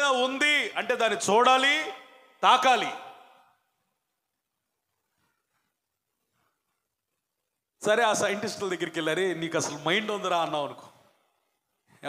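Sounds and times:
man speaking: 0.0 - 3.4, 7.8 - 11.0.

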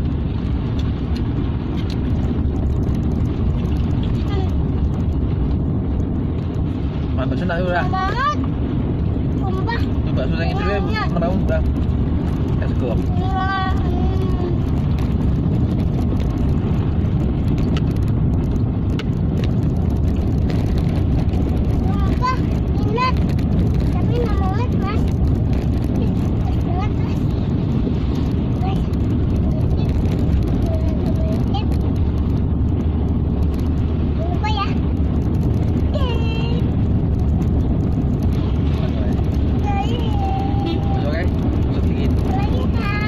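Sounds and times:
car engine and tyre rumble: 0.0 - 43.0.

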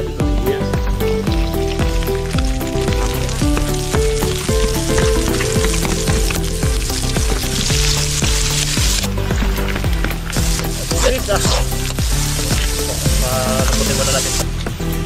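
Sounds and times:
background music: 0.0 - 15.0
garlic sizzling in a wok: 0.6 - 15.0.

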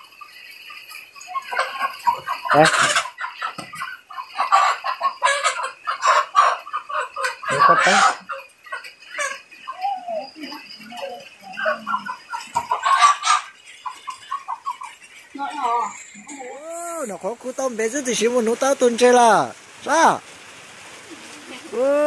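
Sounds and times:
chicken calling harshly: 1.3 - 10.1, 11.0 - 15.0.

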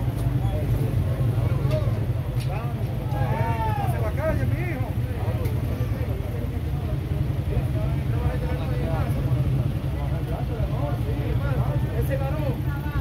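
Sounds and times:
low vehicle engine rumble: 0.0 - 13.0
people talking indistinctly: 0.0 - 13.0.

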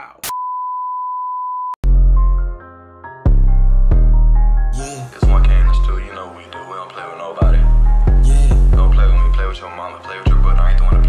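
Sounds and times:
trap beat with heavy bass: 4.8 - 5.8, 7.4 - 9.4, 10.3 - 11.0.

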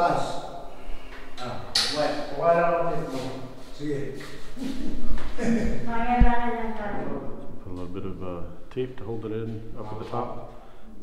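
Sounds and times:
people talking: 0.0 - 0.4, 1.4 - 10.5.

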